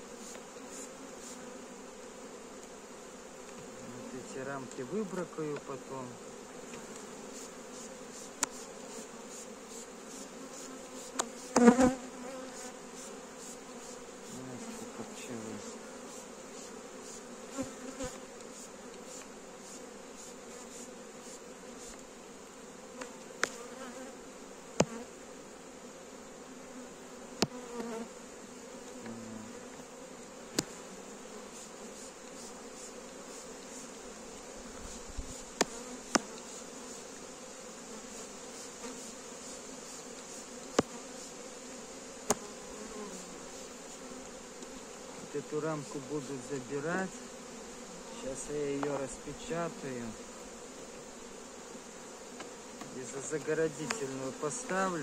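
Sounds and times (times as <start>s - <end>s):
honeybees buzzing: 0.0s - 55.0s.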